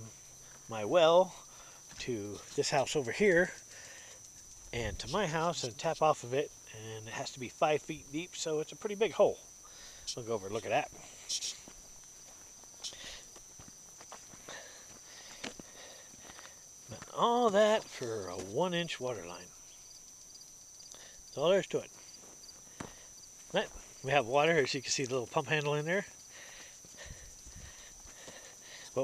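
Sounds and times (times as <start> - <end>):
footsteps on loose dirt: 0.0 - 6.2, 10.4 - 18.7, 21.8 - 29.0.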